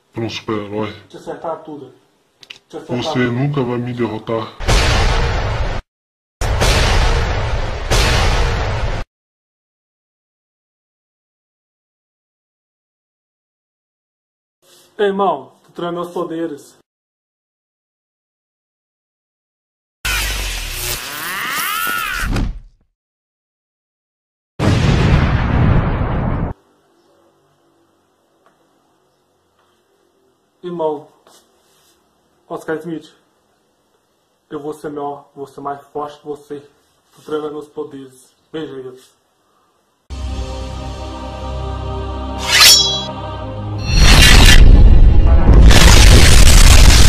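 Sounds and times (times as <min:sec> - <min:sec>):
synthetic energy blast: 0:04.6 - 0:05.8, 0:06.4 - 0:09.0, 0:43.9 - 0:47.0.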